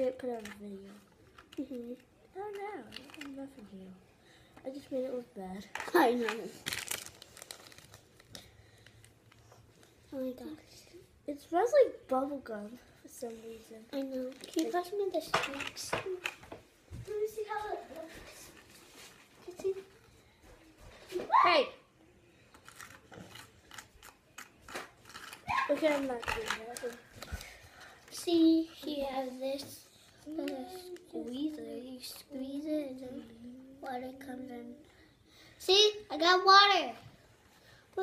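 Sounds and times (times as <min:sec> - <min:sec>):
plastic packaging crinkling: 0:02.8 - 0:03.6, 0:05.7 - 0:09.4, 0:14.2 - 0:16.4, 0:22.5 - 0:27.6.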